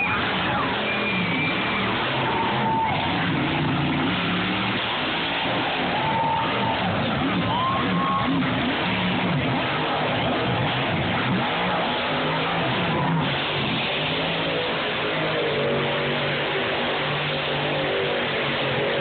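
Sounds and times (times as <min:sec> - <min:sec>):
monster truck engines revving: 0:00.0 - 0:19.0
noisy crowd background: 0:00.0 - 0:19.0.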